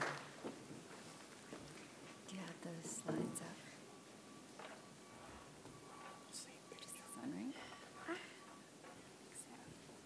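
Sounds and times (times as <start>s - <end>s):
faint whispering: 6.3s - 8.4s, 9.3s - 9.9s.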